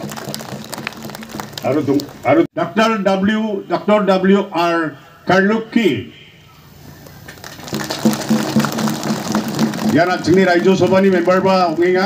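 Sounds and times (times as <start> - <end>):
audience clapping: 0.0 - 2.3, 7.3 - 12.0.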